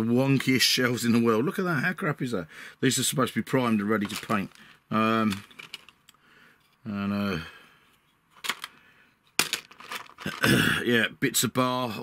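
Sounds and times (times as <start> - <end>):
plastic pieces clattering: 4.0 - 6.0, 8.4 - 8.8, 9.4 - 10.6.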